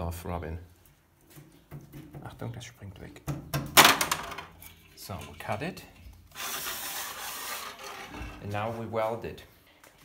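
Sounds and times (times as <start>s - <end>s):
saw blade scraping: 6.3s - 8.7s.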